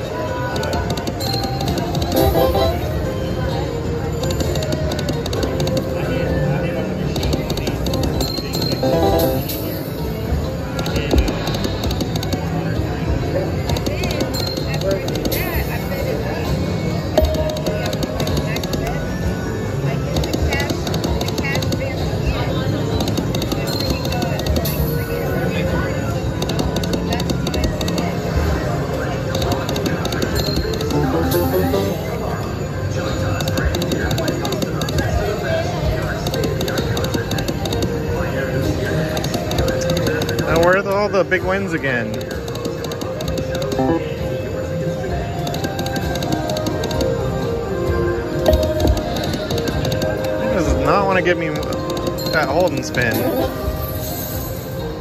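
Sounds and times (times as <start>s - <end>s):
murmur of voices: 0.0s - 55.0s
slot machine reels spinning: 1.6s - 3.1s, 8.4s - 9.8s, 30.6s - 32.3s, 43.8s - 44.2s
electronic music and chimes: 2.2s - 3.0s, 8.7s - 9.8s, 30.8s - 32.4s.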